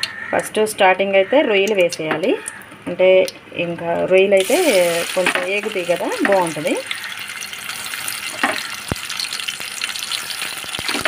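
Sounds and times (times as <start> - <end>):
oil crackling and popping: 4.4 - 11.0
prawns sizzling in hot oil: 4.4 - 11.0.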